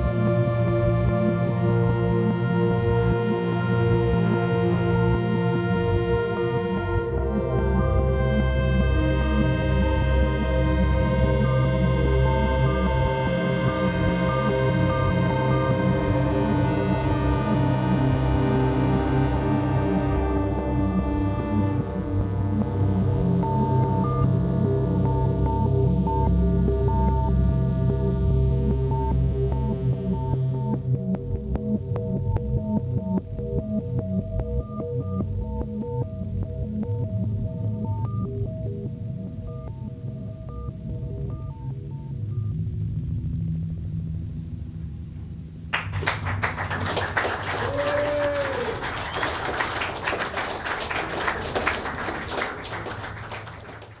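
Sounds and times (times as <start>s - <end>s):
deep throbbing synth bass drone: 0.0s - 45.7s
audience applause: 45.7s - 54.0s
voiced cheer: 46.1s - 53.9s.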